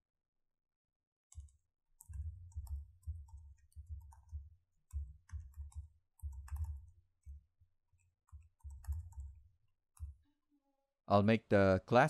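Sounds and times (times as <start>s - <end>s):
typing on computer keyboard: 1.3s - 7.4s, 8.0s - 9.4s.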